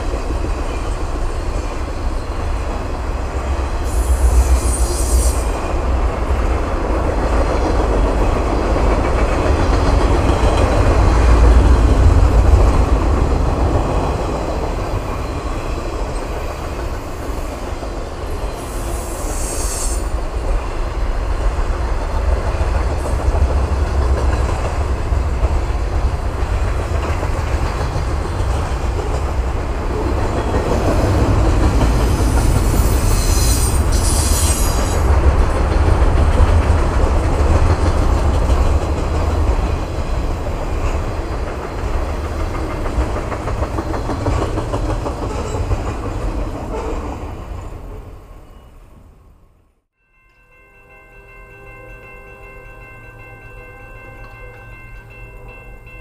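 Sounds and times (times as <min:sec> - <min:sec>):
train wheels rumbling on rail: 0:00.0 - 0:49.6
wheel squeal: 0:32.2 - 0:35.0.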